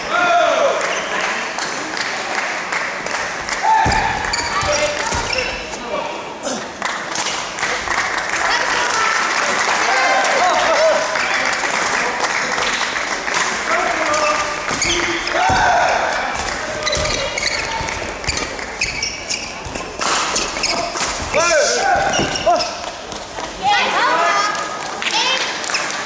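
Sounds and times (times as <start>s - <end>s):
din of voices in a hall: 0.0s - 26.0s
shoe squeaks on court floor: 3.8s - 5.8s, 14.1s - 15.5s, 16.4s - 23.0s.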